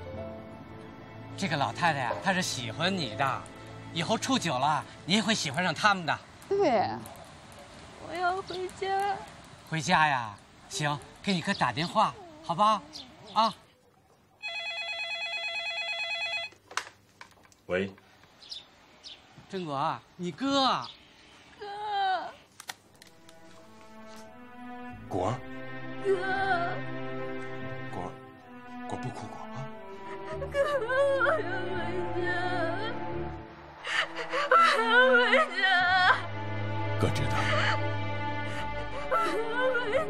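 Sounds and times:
soft sad background music: 0.0 - 6.2, 23.0 - 40.0
telephone ringing electronically: 14.4 - 16.6
woman sobbing: 21.6 - 22.4, 29.9 - 31.8, 33.8 - 36.3, 37.3 - 38.0, 38.8 - 40.0.

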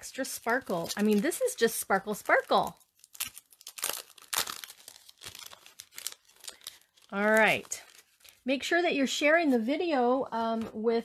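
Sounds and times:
plastic packaging crinkling: 0.1 - 8.5
sticker sheet crinkling: 0.1 - 8.5.

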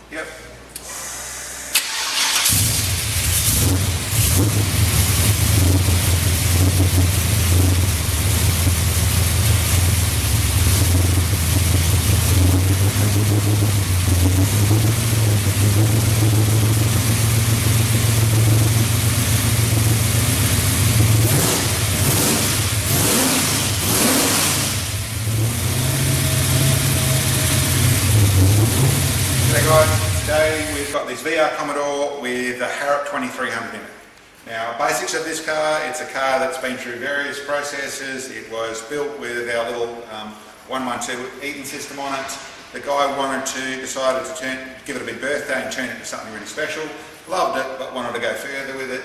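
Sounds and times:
engine revving: 1.7 - 31.0.

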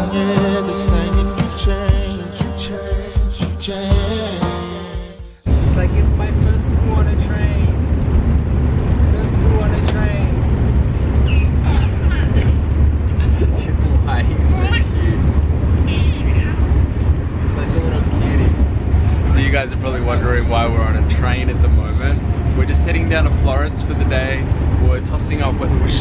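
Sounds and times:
train rumble inside carriage: 5.5 - 26.0.

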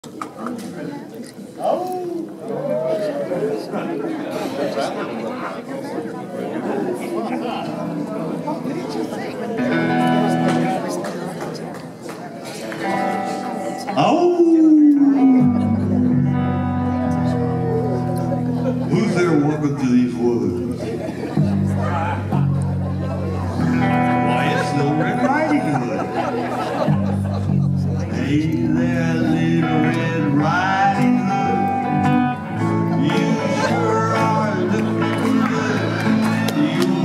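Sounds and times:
people chattering in a large hall: 0.0 - 37.0
guitars playing held chords: 7.8 - 11.0, 12.6 - 37.0.

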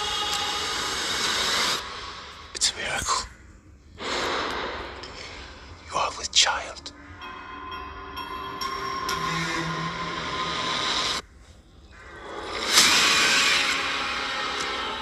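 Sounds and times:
many-toned drone: 3.7 - 15.0.

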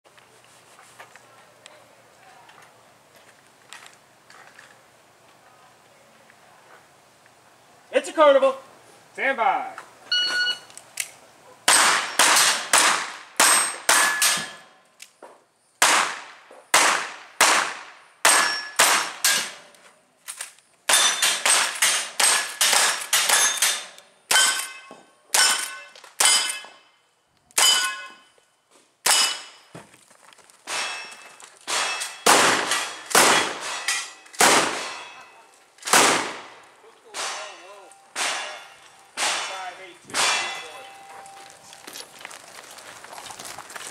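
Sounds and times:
steel target clanging: 13.4 - 14.8, 18.3 - 19.7, 20.9 - 27.0, 27.6 - 28.3, 29.1 - 29.7, 30.7 - 35.4, 37.1 - 41.4
rapid gunshots: 34.4 - 35.0, 35.9 - 36.6.

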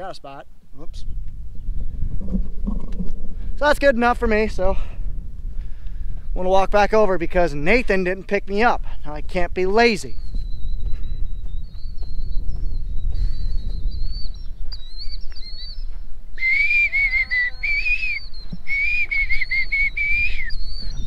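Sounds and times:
wind rumble on microphone: 0.7 - 21.0
faint high wavering tone: 16.4 - 20.2
man whistling: 16.4 - 21.0.

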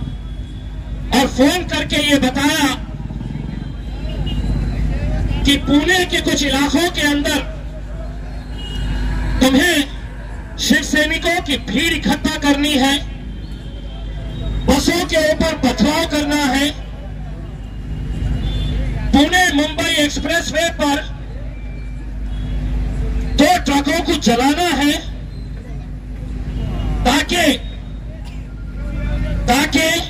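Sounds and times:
low rumble of road traffic: 0.0 - 30.0.

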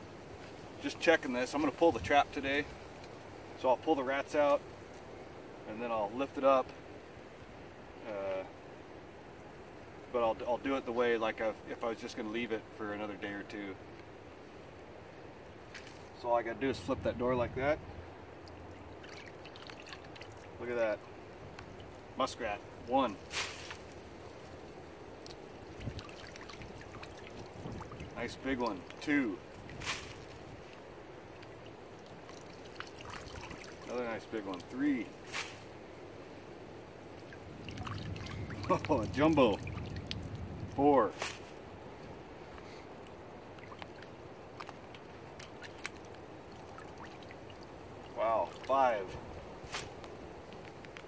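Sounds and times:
water splashing: 15.6 - 35.9, 36.8 - 41.6, 43.3 - 50.7
water trickling: 17.8 - 35.3, 36.7 - 41.0, 43.0 - 49.1
wet handling sounds: 18.3 - 35.8, 43.0 - 51.0.

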